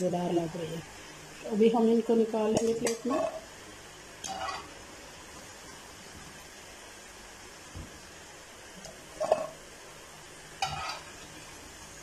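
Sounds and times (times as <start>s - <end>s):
food sizzling in oil: 0.0s - 12.0s
metal skimmer scraping a pan: 4.2s - 4.7s, 10.6s - 11.2s.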